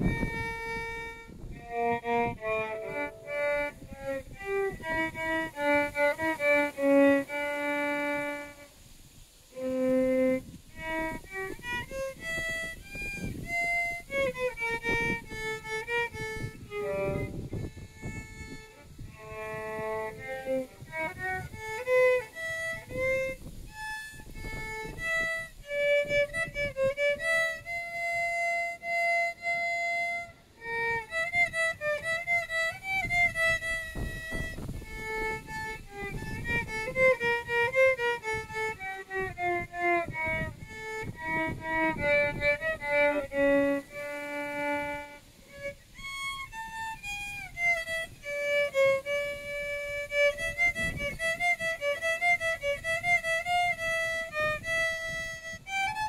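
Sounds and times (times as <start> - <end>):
solo violin melody: 0.0 - 56.0.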